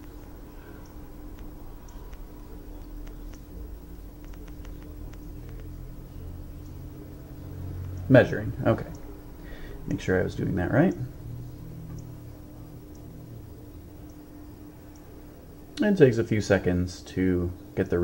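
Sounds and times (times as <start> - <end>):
faint irregular clicks: 0.0 - 5.9, 7.8 - 8.1, 11.8 - 12.3, 14.0 - 14.3
low electrical hum: 0.0 - 18.0.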